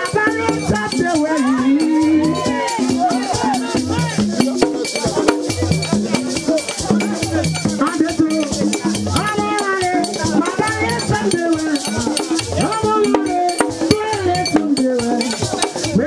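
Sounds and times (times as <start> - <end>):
drums: 0.0 - 16.0
voices singing a chant: 0.0 - 16.0.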